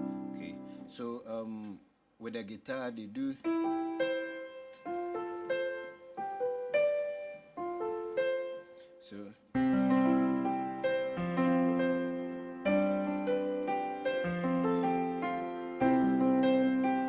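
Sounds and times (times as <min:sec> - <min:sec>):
digital piano notes and chords: 0:00.0 - 0:01.6, 0:03.3 - 0:17.0.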